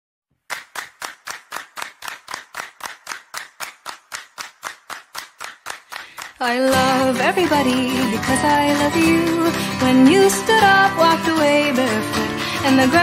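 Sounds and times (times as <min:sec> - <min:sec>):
rhythmic hand claps: 0:00.4 - 0:13.0.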